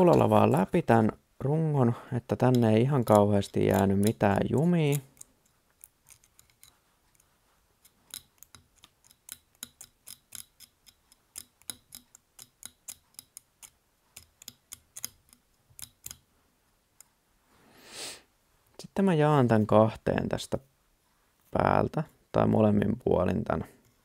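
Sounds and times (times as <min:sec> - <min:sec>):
needle clicking through tinsel: 0:02.4 - 0:16.2.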